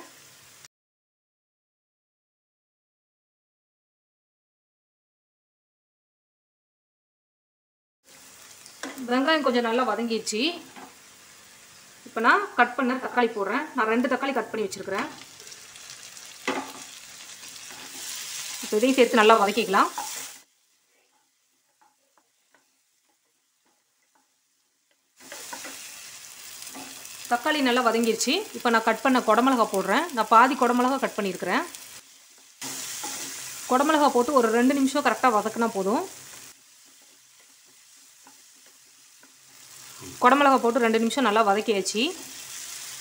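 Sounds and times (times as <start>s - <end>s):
food sizzling in oil: 0.0s - 0.7s, 8.0s - 43.0s
spatula scraping a pan: 16.5s - 18.7s, 19.5s - 20.4s, 25.2s - 27.2s, 32.3s - 33.7s.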